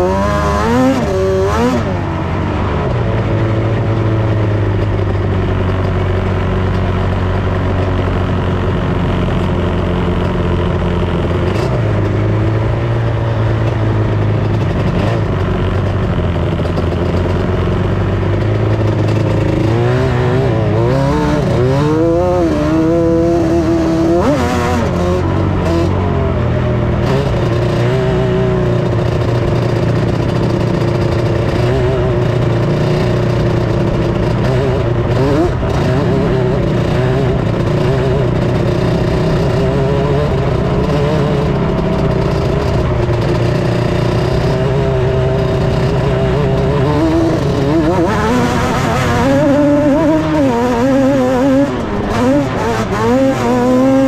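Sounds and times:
off-road vehicle engine revving: 0.0 - 54.0.

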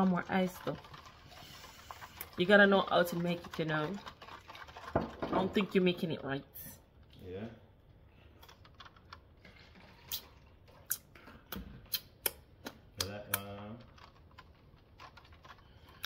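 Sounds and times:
sharp clicks and taps: 11.5 - 13.6.

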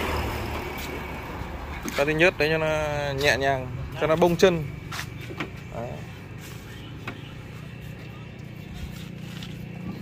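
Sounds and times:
low vehicle hum: 0.0 - 10.0.

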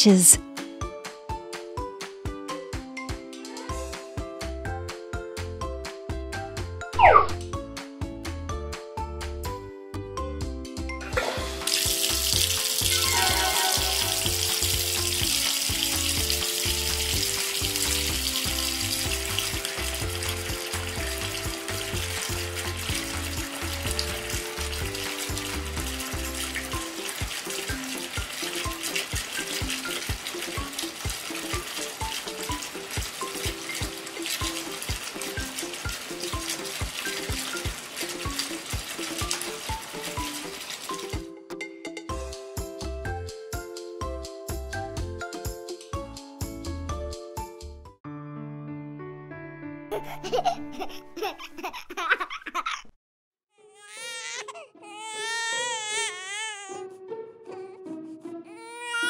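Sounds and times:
children's music: 0.0 - 48.1, 49.6 - 52.2, 53.8 - 59.0.

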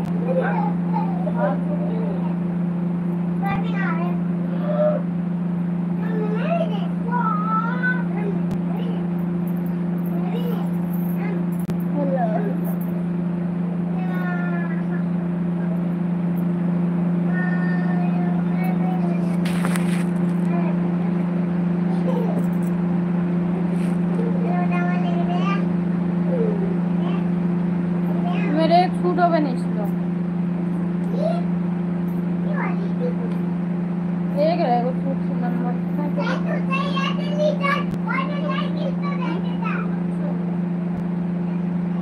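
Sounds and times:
steady low hum: 0.0 - 42.0.

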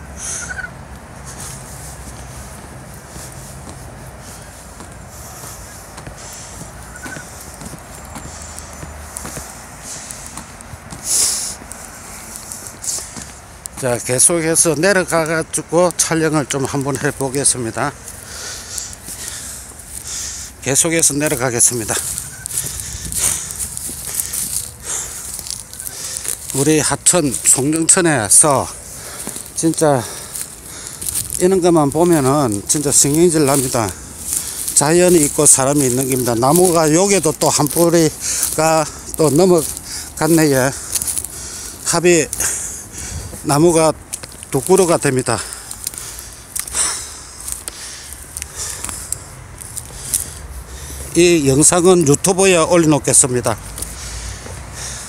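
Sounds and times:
steady low rumble: 0.0 - 15.6, 17.2 - 51.2
footsteps on paved path: 0.0 - 55.0
outdoor background noise: 0.0 - 55.0.

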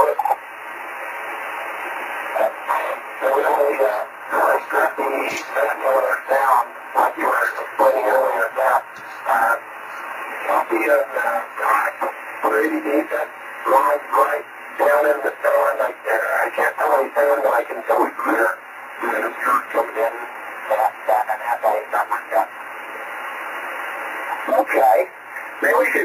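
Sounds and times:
thin speech over radio speaker: 0.0 - 0.4, 2.3 - 22.5, 24.3 - 26.0
radio hiss: 0.0 - 26.0.

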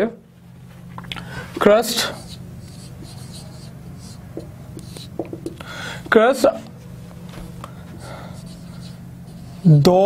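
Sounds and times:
marker pen scratching on whiteboard: 1.6 - 5.6, 7.9 - 10.0.

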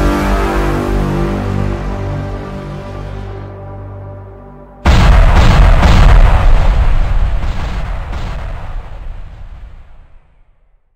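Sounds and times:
crash and boom with rumble: 4.8 - 10.7.

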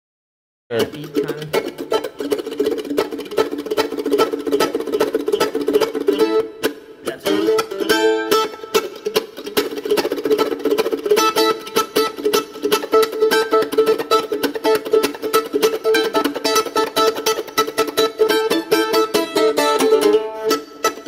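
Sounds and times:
mandolin strummed fast: 0.7 - 21.0.

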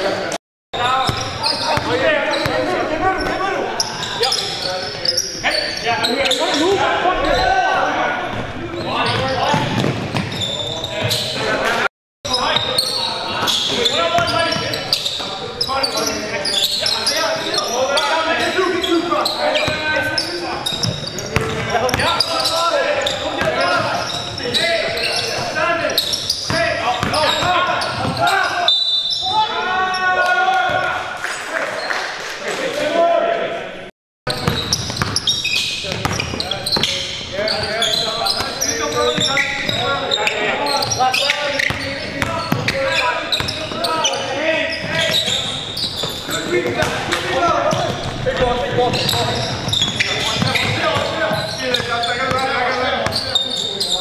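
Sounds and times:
echoing court noise: 0.0 - 54.0
players' voices: 0.0 - 54.0.

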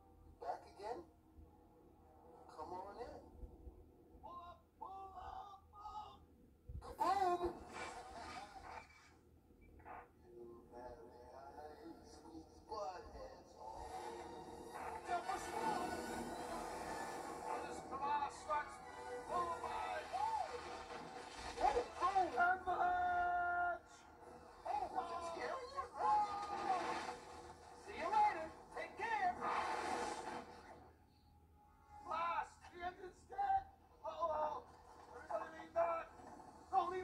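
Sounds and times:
soundtrack music from television: 0.0 - 4.0, 7.1 - 32.7, 33.8 - 37.0.

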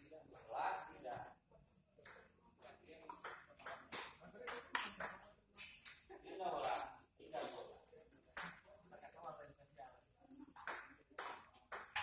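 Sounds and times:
ping-pong ball hitting paddles: 2.0 - 2.3, 3.0 - 6.9, 7.6 - 9.5, 10.4 - 12.0.

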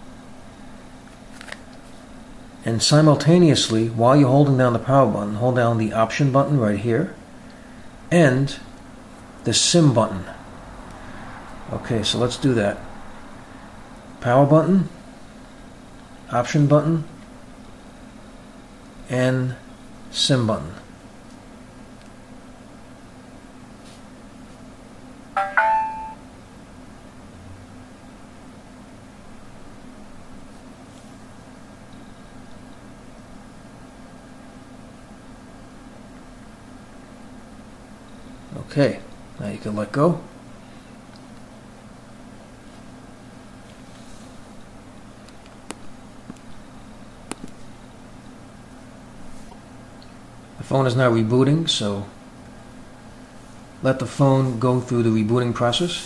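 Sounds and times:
low steady hum: 0.0 - 56.0
phone two-note chime: 25.4 - 26.2.

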